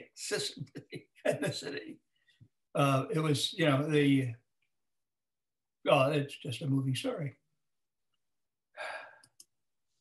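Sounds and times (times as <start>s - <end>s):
faint clicks: 9.2s - 9.6s.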